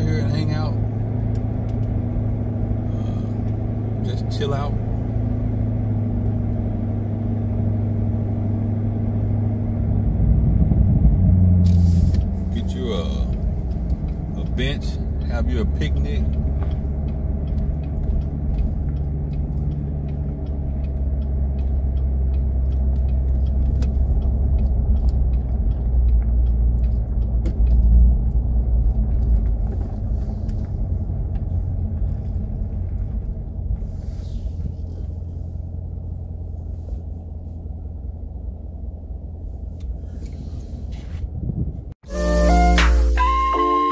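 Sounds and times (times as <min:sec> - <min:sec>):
car engine cruising: 0:00.0 - 0:43.9.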